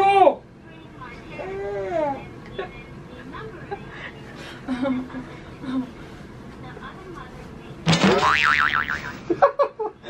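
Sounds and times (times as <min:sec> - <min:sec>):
cartoon spring boing: 0:07.9 - 0:09.2.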